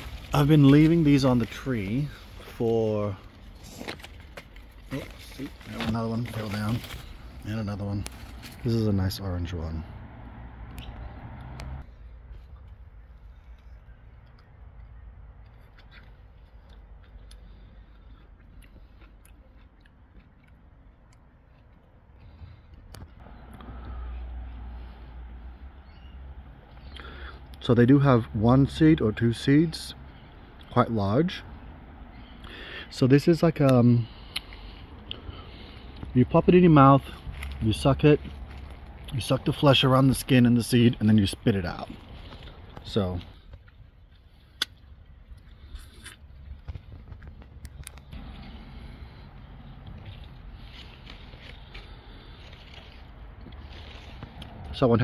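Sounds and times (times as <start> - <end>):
person biting and sucking fruit: 15.3 - 23.8, 34.2 - 36.1, 41.9 - 54.7.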